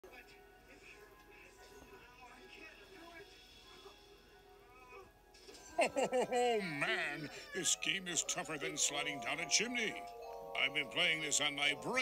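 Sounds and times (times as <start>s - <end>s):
faint television voices: 0.0s - 12.0s
television music: 0.0s - 12.0s.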